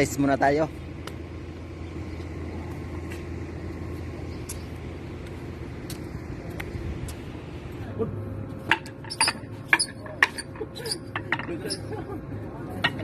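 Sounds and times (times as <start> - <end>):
distant engines rumbling: 0.0 - 13.0
faint steady hum: 0.0 - 13.0.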